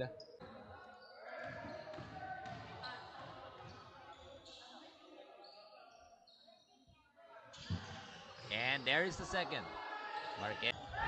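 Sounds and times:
basketball bouncing on hardwood floor: 1.4 - 2.7.

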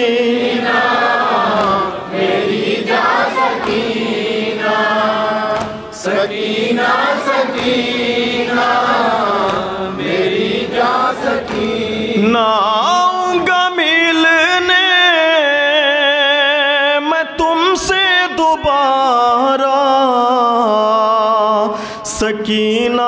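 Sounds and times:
lead singer chanting: 0.0 - 23.0
men singing in chorus: 0.0 - 23.0.

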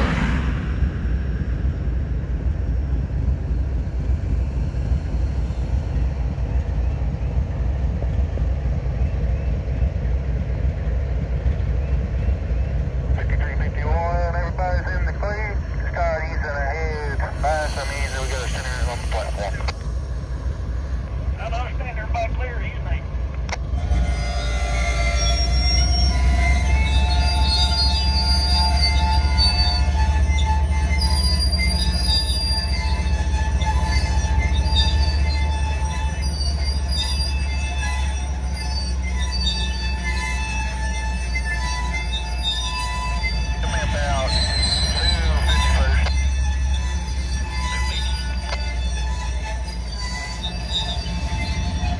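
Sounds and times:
freight train rumbling: 0.0 - 51.9
high steady tones: 14.5 - 23.2, 23.8 - 51.9.

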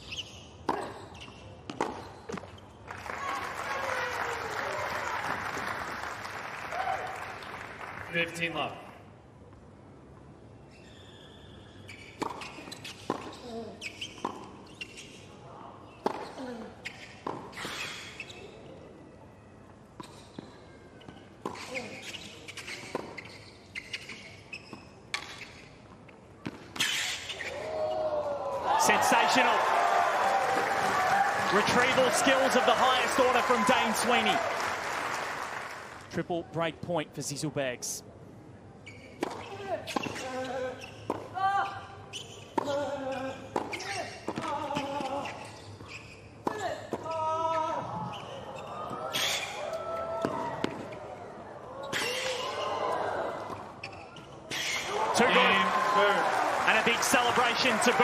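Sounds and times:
shoe squeaks on court: 0.0 - 2.8, 10.6 - 15.3, 16.0 - 18.6, 20.0 - 26.1, 26.8 - 27.6, 38.8 - 49.6, 53.8 - 54.9
crowd cheering and applauding: 2.9 - 8.1, 28.6 - 36.0, 54.9 - 58.0.

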